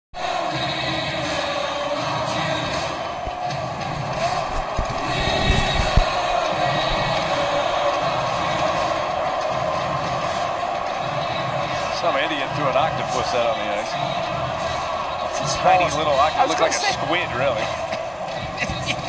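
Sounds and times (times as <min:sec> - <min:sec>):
crowd hubbub: 0:00.2 - 0:19.0
low thumps: 0:03.2 - 0:07.3.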